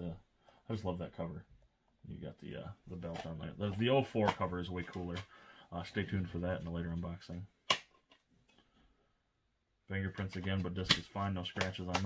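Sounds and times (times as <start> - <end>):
man speaking: 0.0 - 7.5, 9.9 - 12.0
faint handling sounds: 0.3 - 9.0.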